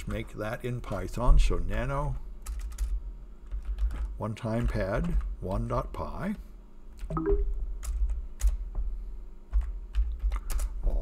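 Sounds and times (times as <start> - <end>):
keystrokes on computer keyboard: 2.4 - 5.3, 7.0 - 8.6, 9.5 - 11.0.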